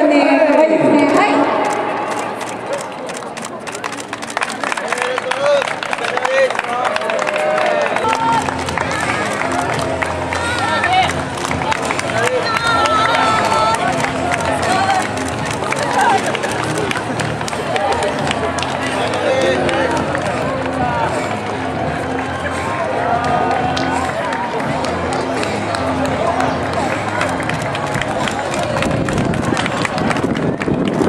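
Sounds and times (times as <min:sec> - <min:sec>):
voices calling out and cheering: 0:00.0 - 0:31.0
faint background music: 0:07.3 - 0:31.0.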